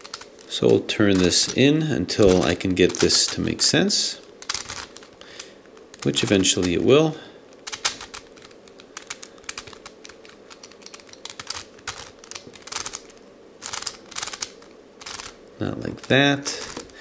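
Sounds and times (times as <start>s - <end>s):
plastic puzzle clicking: 0.0s - 1.6s, 2.2s - 3.4s, 4.3s - 6.8s, 7.6s - 17.0s.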